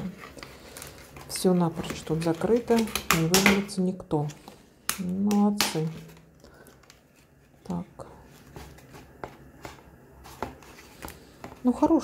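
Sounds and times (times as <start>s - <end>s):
newspaper rustling: 0.0s - 3.1s.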